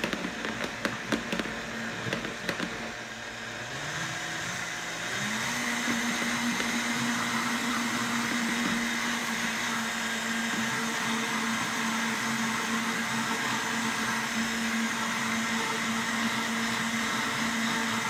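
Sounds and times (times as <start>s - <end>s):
blender motor running: 0.0s - 18.0s.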